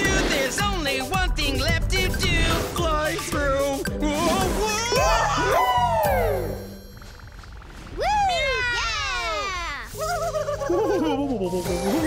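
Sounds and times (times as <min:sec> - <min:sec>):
background music: 0:00.0 - 0:07.0, 0:09.8 - 0:12.0
creatures calling with swooping cries: 0:04.6 - 0:10.7.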